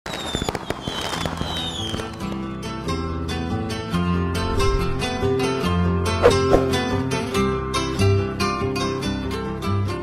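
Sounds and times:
firework whistles: 0.1s - 2.3s
firework crackling pops: 0.1s - 2.6s
plucked string music: 2.6s - 10.0s.

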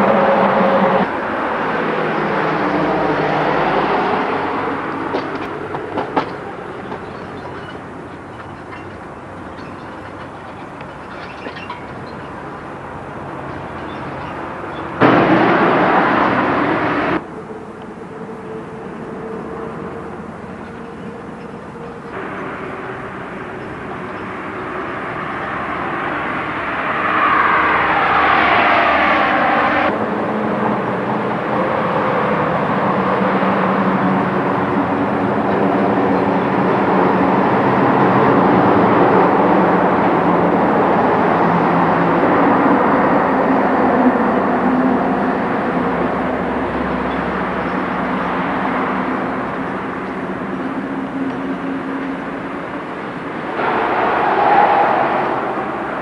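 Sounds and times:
vehicle low hum: 0.0s - 56.0s.

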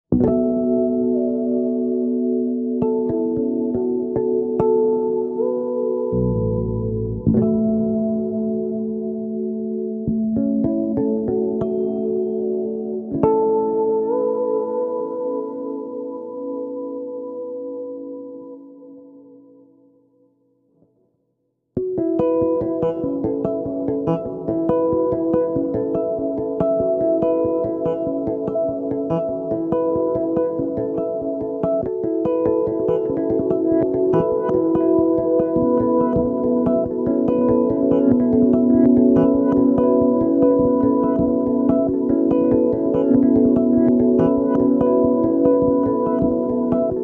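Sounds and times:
electric bass plucked notes: 0.2s - 14.8s, 21.8s - 47.0s
fretless bass ringing notes: 6.1s - 12.0s.

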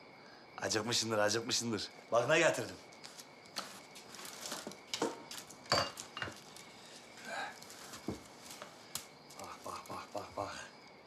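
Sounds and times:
light rustling: 2.9s - 9.4s
dishes clinking and knocking: 4.9s - 6.4s.

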